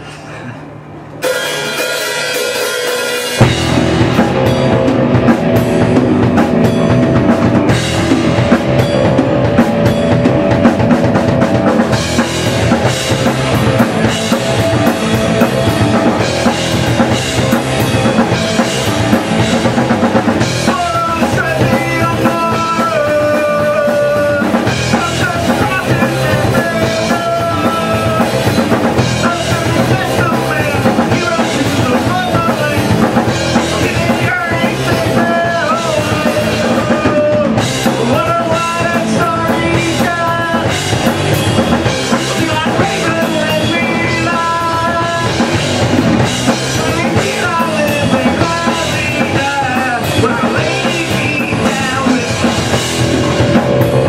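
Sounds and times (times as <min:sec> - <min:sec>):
higher melody line: 0:01.2 - 0:54.0
rock band playing: 0:01.2 - 0:54.0.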